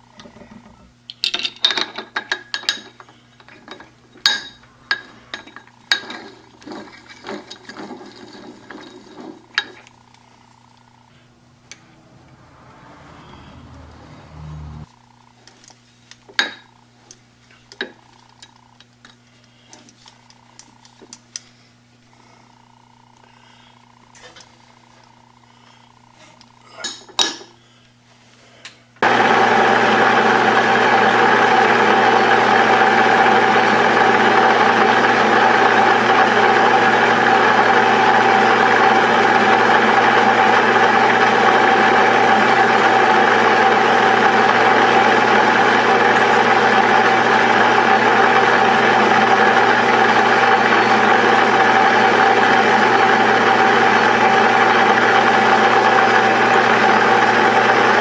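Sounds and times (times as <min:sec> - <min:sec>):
metal lathe whining: 0:01.9 - 0:14.9, 0:29.0 - 0:58.0.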